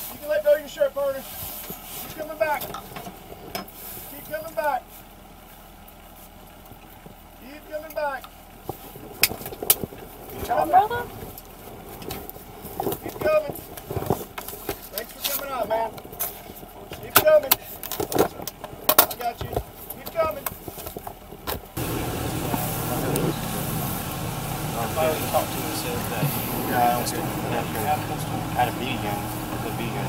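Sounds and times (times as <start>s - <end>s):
low rumble with hiss: 0.0s - 30.0s
muffled voices: 21.8s - 30.0s.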